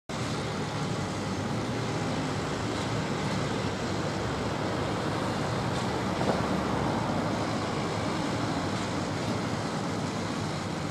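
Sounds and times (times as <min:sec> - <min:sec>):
diesel machinery droning: 0:00.1 - 0:10.9.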